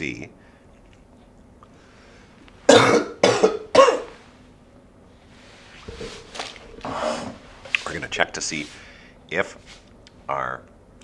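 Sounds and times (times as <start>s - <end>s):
man coughing: 2.7s - 4.1s.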